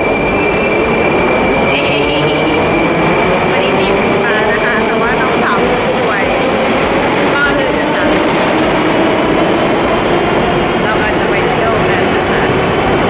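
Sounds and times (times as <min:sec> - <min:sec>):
metro train rumbling: 0:00.0 - 0:13.0.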